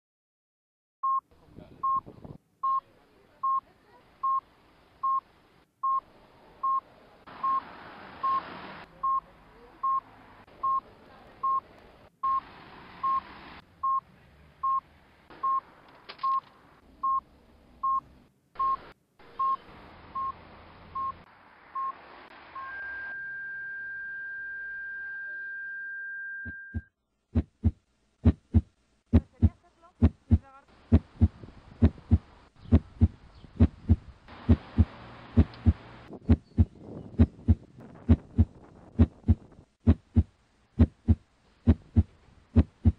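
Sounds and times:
outdoor ambience: 1.1 - 42.9
short electronic beeps: 7.4 - 7.6, 12.2 - 12.4, 18.6 - 19.6, 21.8 - 26.9
steady high tone: 22.5 - 26.9
low thumps beat: 26.7 - 42.9.

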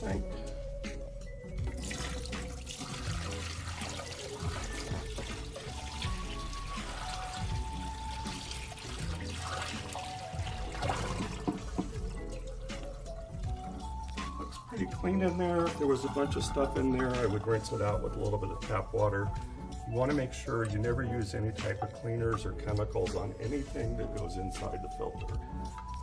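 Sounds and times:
water splashing into metal sink: 1.6 - 14.5.

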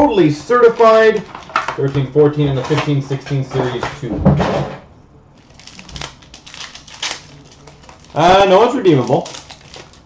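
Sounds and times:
cards and wrapper rustling: 0.0 - 3.9, 5.4 - 10.0.

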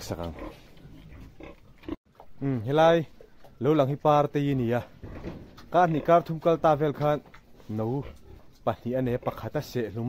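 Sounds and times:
pig grunting: 0.0 - 2.6, 5.0 - 6.6.

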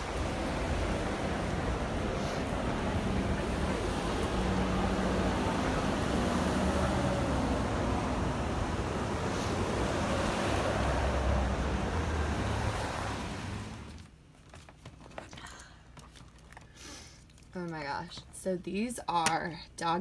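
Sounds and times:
cars driving past on wet road: 0.0 - 14.1.

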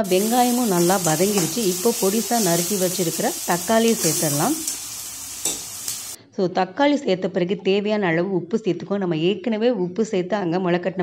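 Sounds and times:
onion and tomato sizzling in oil: 0.0 - 6.2.

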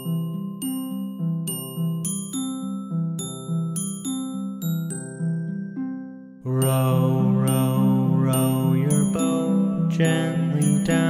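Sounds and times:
instrumental children's music: 0.0 - 11.0.

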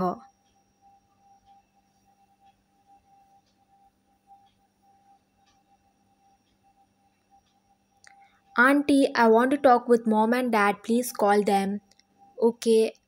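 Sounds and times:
faint steady tone: 0.0 - 13.0.

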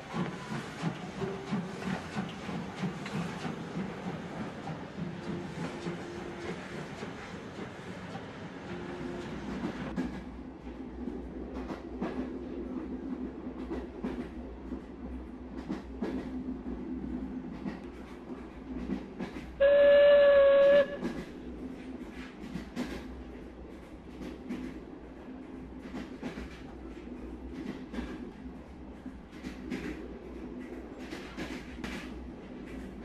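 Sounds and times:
steam locomotive whistle: 19.6 - 21.2.

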